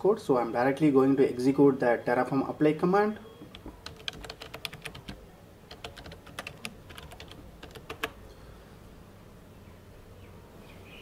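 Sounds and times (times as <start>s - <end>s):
typing on computer keyboard: 3.4s - 8.2s.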